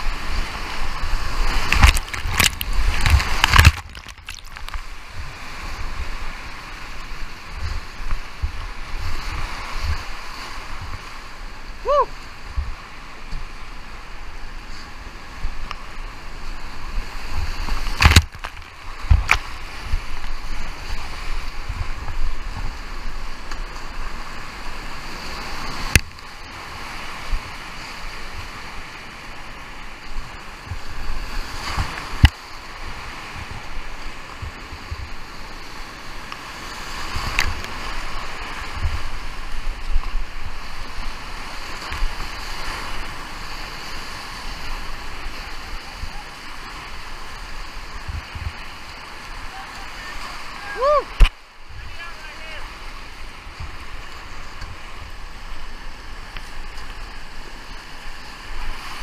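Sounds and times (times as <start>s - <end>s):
water splashing over boat: 0.0s - 11.2s
whitewater rapids rushing: 0.0s - 59.0s.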